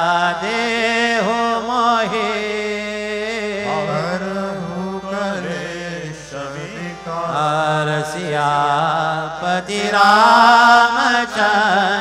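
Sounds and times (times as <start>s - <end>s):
person chanting: 0.1s - 12.0s
steady low drone: 3.3s - 8.3s.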